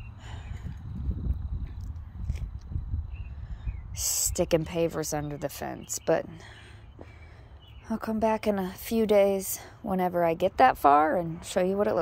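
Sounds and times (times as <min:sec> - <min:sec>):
wind on phone microphone: 0:00.0 - 0:05.0.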